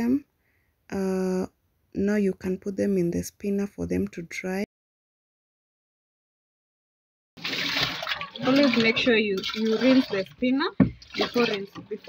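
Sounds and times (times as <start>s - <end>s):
water poured into washing machine tub: 7.4s - 12.0s.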